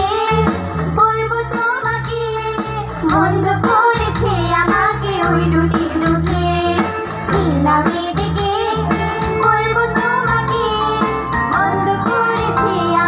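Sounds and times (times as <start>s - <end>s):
keyboard: 0.0s - 13.0s
steady bass line: 0.0s - 13.0s
women singing with vibrato: 0.0s - 13.0s
electric guitars: 2.9s - 13.0s.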